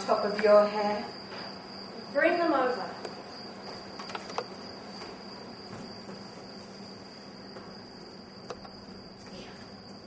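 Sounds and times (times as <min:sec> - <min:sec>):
high-pitched whine: 0:00.0 - 0:10.0.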